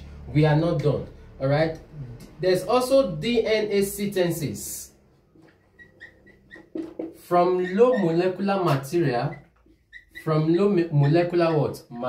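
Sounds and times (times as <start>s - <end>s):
marker squeaking on whiteboard: 5.2s - 11.8s.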